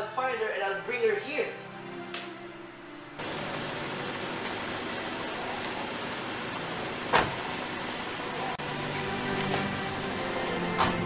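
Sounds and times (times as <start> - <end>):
car engine idling: 3.2 - 10.7.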